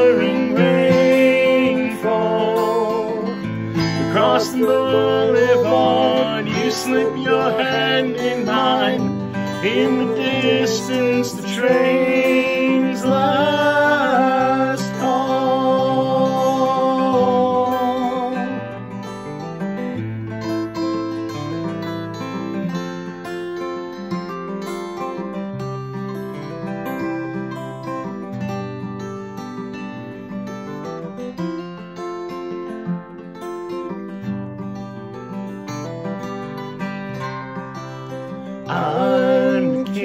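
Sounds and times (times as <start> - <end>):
acoustic guitars playing: 0.0 - 40.0.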